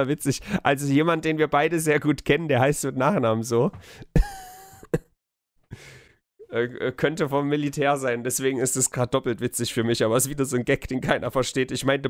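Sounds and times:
man exhaling: 5.7s - 6.2s.

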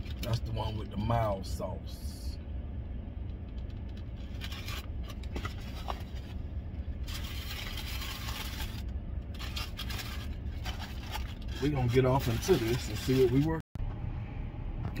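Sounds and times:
steady low hum: 0.0s - 15.0s
paper wrapper rustling: 4.2s - 6.4s, 7.0s - 13.6s.

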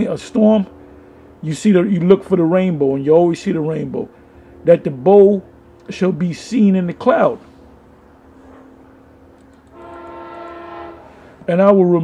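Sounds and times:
person speaking: 1.4s - 7.5s
horn sounding a chord: 9.7s - 11.6s.

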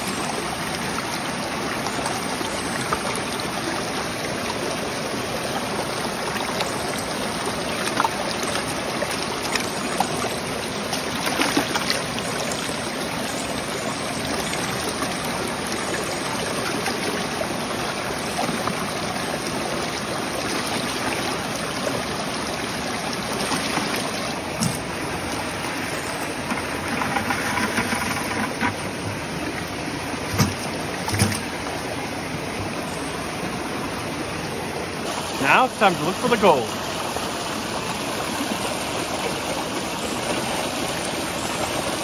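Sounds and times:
creek water rushing: 0.0s - 42.0s
water sloshing in plastic bucket: 7.8s - 12.5s, 23.2s - 31.7s.

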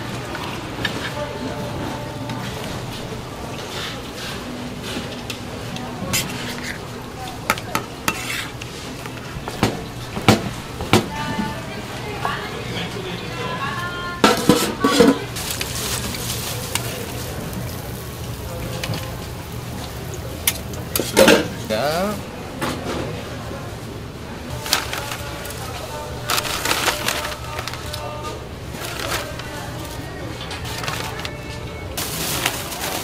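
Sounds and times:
utensils knocking on metal pans: 14.2s - 15.3s.

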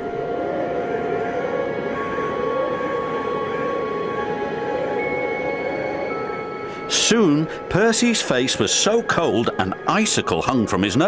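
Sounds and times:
wind howling: 0.0s - 9.9s
soft music with held notes: 0.0s - 11.0s.

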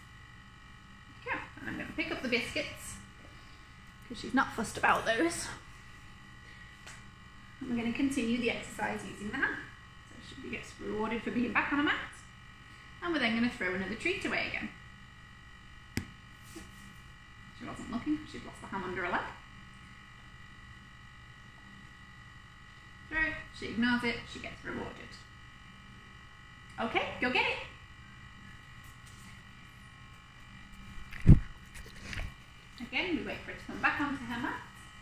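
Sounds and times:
faint electrical hum: 0.0s - 35.0s.

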